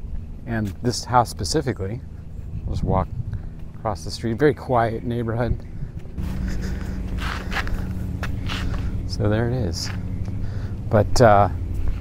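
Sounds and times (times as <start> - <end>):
footsteps on pavement: 0.0 - 1.0, 2.1 - 10.8
steady low hum: 0.0 - 12.0.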